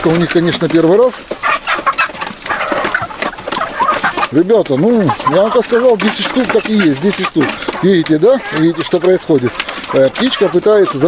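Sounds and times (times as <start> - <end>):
chickens clucking: 0.0 - 11.0
chickens pecking at feeder: 0.0 - 11.0.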